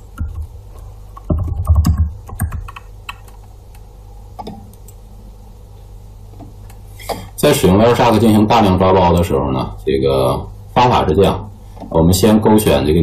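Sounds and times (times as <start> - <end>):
keyboard typing: 1.2 - 3.5.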